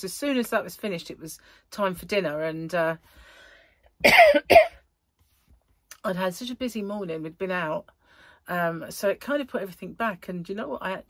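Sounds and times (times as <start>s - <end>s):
faint breath: 3.0s - 3.9s, 8.0s - 8.4s
woman coughing: 4.0s - 4.8s.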